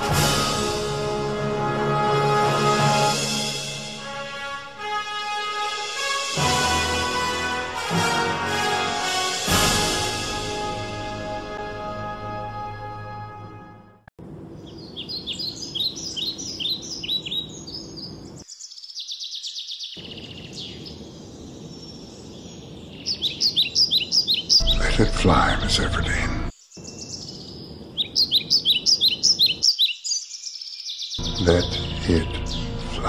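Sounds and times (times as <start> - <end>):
songbirds chirping: 14.2 - 33.0
steady background hiss: 20.0 - 29.7.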